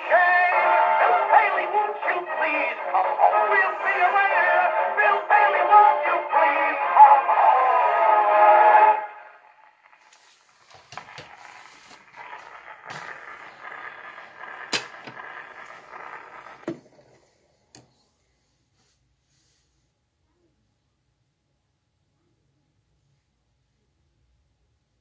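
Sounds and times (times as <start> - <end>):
old record playing a song: 0.0 - 19.2.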